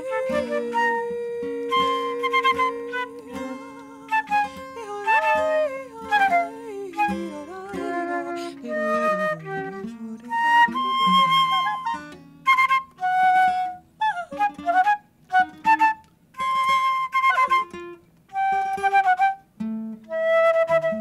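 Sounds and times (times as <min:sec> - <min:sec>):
flute playing quick sliding notes: 0:00.0 - 0:07.3
acoustic guitar: 0:00.0 - 0:21.0.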